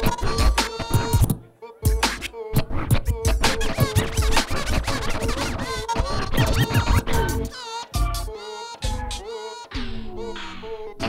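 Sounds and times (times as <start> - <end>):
hip hop beat: 0.0 - 11.0
record scratching: 0.0 - 11.0.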